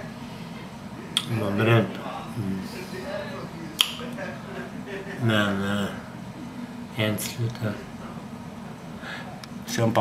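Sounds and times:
quiet talk: 0:00.0 - 0:10.0.

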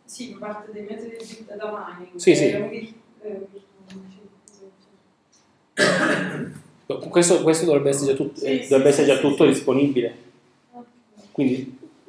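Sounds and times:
man clearing his throat: 0:05.8 - 0:06.7.

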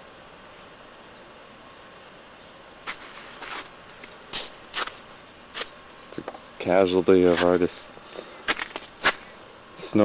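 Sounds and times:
faint steady hiss: 0:00.0 - 0:10.0
person speaking: 0:06.0 - 0:08.4.

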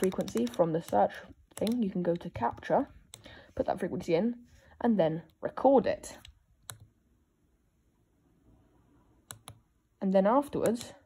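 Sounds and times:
push buttons clicking: 0:00.0 - 0:03.2.

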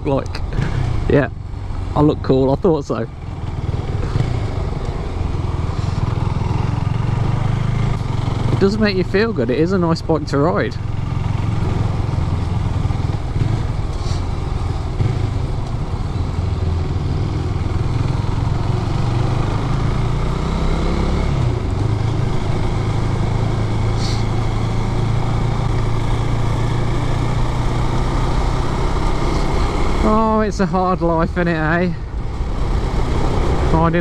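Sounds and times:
motorcycle engine running: 0:00.2 - 0:34.0.

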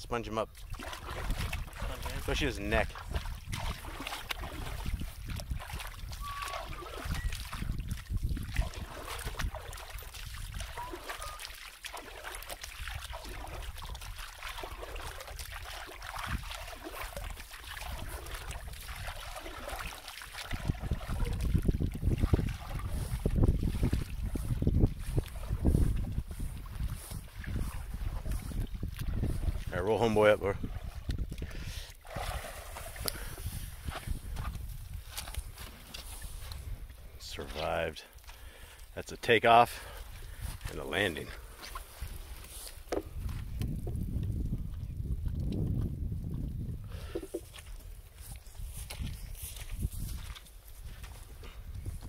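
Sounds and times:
water sloshing in plastic tub: 0:00.3 - 0:52.0.

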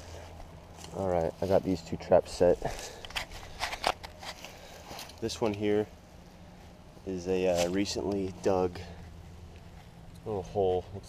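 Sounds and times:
footsteps crunching through dry leaves: 0:00.0 - 0:08.5.

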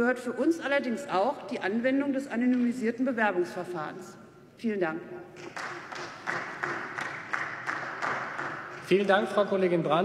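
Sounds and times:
sharp single claps: 0:05.4 - 0:09.2
applause: 0:05.4 - 0:09.5.

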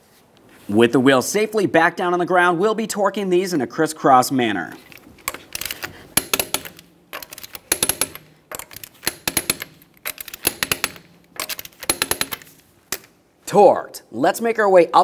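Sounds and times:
torque wrench ratcheting clicks: 0:04.9 - 0:13.1.

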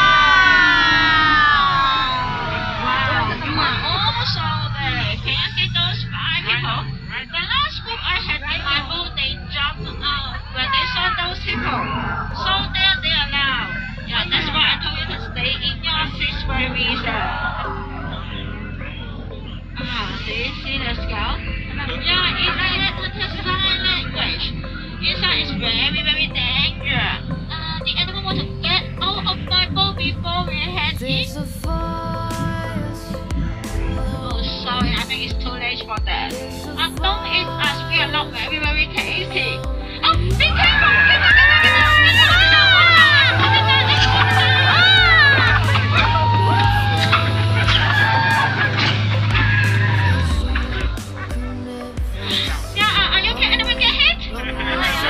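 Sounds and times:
steady low hum: 0:00.0 - 0:55.0
person singing with vibrato: 0:30.1 - 0:55.0.

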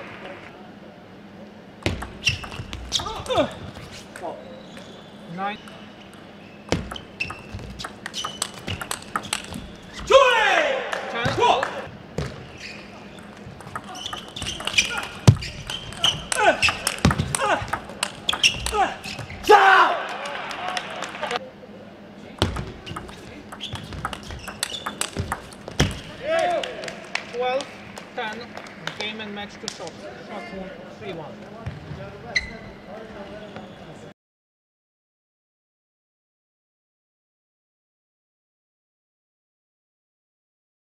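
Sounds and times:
table tennis ball clicking: 0:05.7 - 0:09.8, 0:13.2 - 0:19.2, 0:22.5 - 0:26.1
players shouting: 0:09.9 - 0:11.9, 0:13.8 - 0:21.4, 0:26.0 - 0:27.2.

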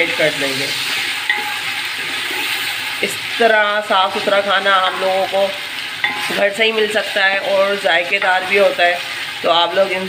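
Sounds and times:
vegetables sizzling in hot oil: 0:00.0 - 0:10.0
spatula stirring in pot: 0:00.8 - 0:09.4.

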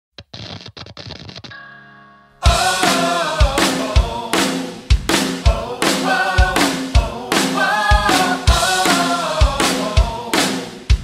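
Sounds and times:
ringing chord: 0:01.5 - 0:03.2.

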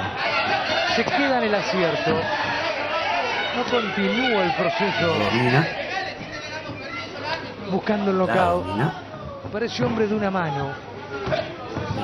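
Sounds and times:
crowd chatter: 0:03.8 - 0:09.3, 0:11.7 - 0:12.0
man commentating: 0:05.1 - 0:05.8, 0:08.2 - 0:09.0.

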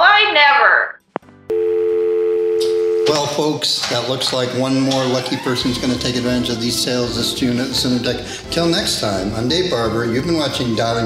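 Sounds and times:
phone line click: 0:01.5 - 0:03.1
telephone dial tone: 0:01.5 - 0:03.2.

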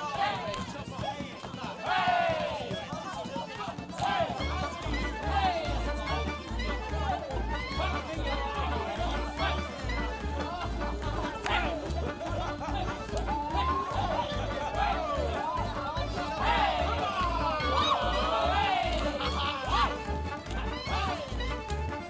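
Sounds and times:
music: 0:00.0 - 0:22.0
group shouting and whooping: 0:11.4 - 0:21.3.

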